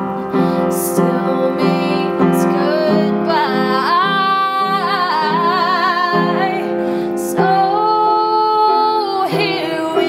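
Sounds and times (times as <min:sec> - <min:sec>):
piano playing chords: 0:00.0 - 0:10.0
woman singing with vibrato: 0:00.3 - 0:10.0.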